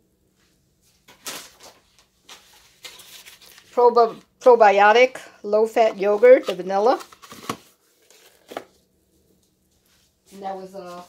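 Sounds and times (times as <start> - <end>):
faint handling rustle: 7.7 - 11.0.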